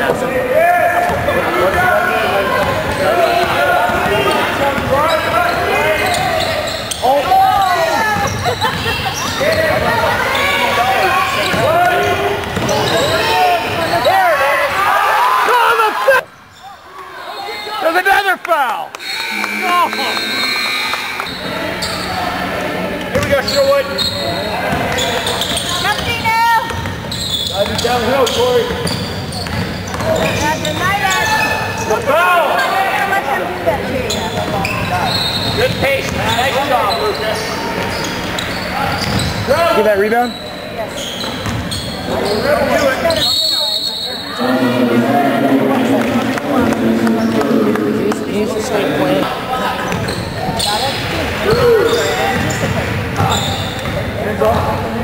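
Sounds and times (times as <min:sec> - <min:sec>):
crowd voices in gym: 0:00.0 - 0:55.0.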